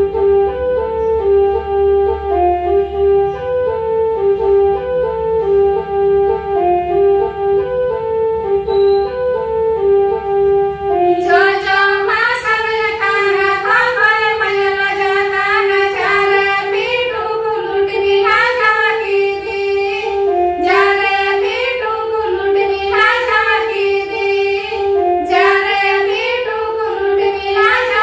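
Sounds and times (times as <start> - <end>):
organ-like melody: 0.0 - 28.0
women singing together: 11.1 - 28.0.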